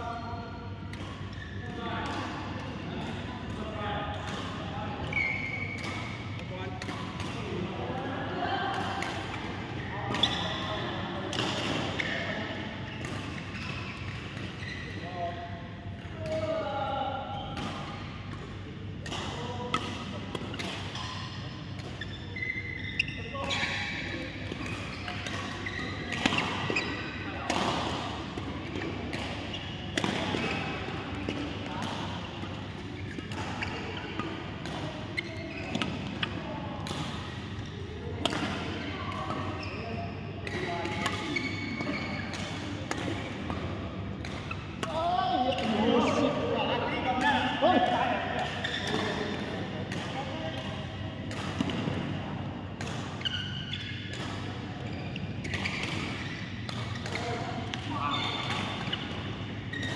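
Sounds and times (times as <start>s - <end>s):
rackets striking shuttlecock: 23.5s - 39.6s, 40.4s - 46.3s, 47.2s - 54.6s, 55.4s - 59.9s.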